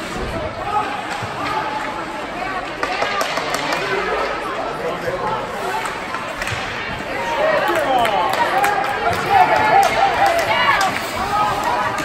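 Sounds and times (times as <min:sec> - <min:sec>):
hockey sticks and puck clacking: 0:00.0 - 0:12.0
spectators chattering: 0:00.0 - 0:12.0.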